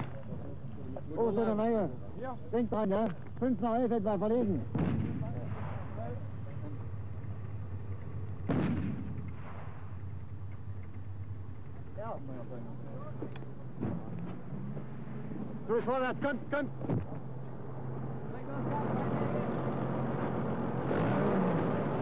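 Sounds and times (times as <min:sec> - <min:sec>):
steady low hum: 0:00.0 - 0:22.0
artillery gun blasts: 0:04.7 - 0:06.0, 0:08.4 - 0:10.0.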